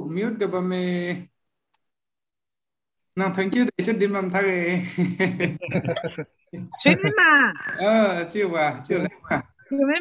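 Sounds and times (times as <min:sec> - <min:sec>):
person speaking: 0:03.2 - 0:10.0.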